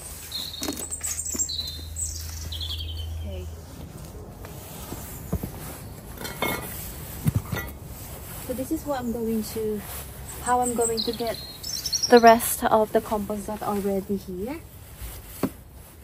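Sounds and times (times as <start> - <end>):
small bird chirping: 0.0 - 3.6, 9.0 - 13.0
rustling: 0.0 - 16.0.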